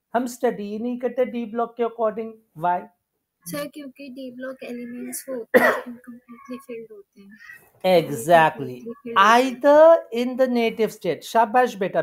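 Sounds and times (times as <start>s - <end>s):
person coughing: 5.5s - 6.6s.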